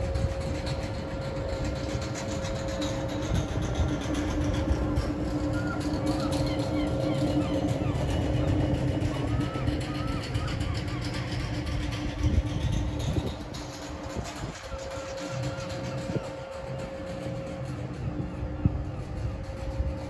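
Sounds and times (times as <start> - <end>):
cooling fans running: 0.0 - 20.0
train power car humming: 0.0 - 20.0.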